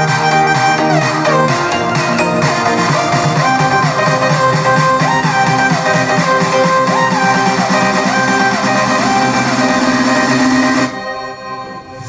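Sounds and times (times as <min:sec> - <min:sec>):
music through soundbar: 0:00.0 - 0:12.0.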